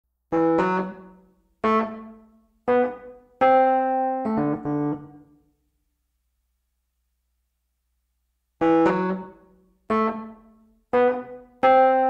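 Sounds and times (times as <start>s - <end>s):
keyboard chords: 0.3s - 5.3s, 8.6s - 12.0s.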